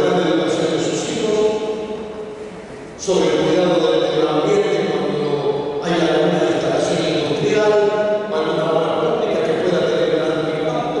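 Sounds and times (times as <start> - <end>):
man speaking over public address: 0.0 - 2.0, 2.9 - 11.0.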